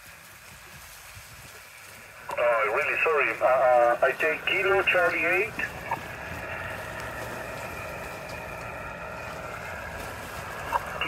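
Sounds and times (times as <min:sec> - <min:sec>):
radio receiver hiss: 0:01.8 - 0:11.0.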